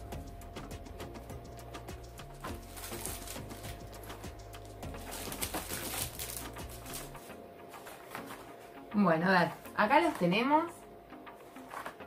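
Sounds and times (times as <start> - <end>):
soft background music: 0.0 - 12.0
plastic wrapping crinkling: 2.4 - 8.6.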